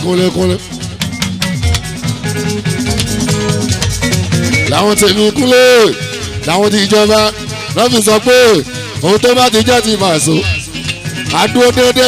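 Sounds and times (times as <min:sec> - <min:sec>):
plucked guitar notes: 0:00.0 - 0:07.8
electric bass guitar: 0:00.0 - 0:12.0
percussion strokes: 0:00.0 - 0:12.0.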